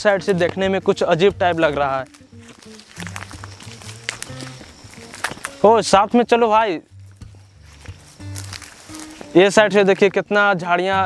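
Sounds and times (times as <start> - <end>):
background music bass notes: 0.0 - 11.0
footsteps on dirt path: 0.0 - 11.0.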